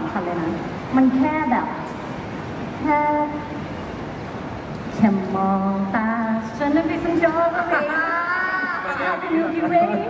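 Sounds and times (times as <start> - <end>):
woman's voice over loudspeakers: 0.0 - 1.9, 5.0 - 10.0
steady background noise: 0.0 - 10.0.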